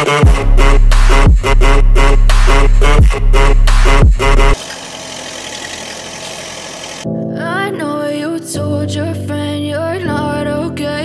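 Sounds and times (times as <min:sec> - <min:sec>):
loud electronic music: 0:00.0 - 0:04.6.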